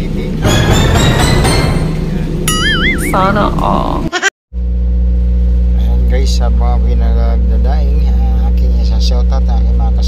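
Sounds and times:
steady low hum: 0.0 - 10.0
background music: 0.4 - 3.1.

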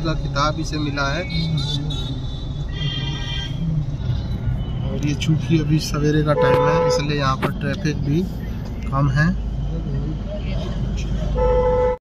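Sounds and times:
car horn honk: 6.3 - 7.2, 11.4 - 12.0.

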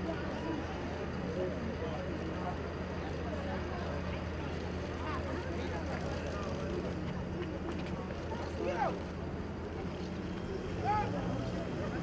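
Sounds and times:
distant murmur of voices: 0.0 - 12.0.

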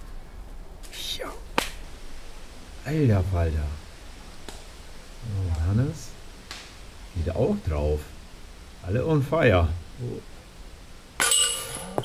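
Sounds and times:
sharp crack: 0.8 - 2.0, 6.4 - 6.8.

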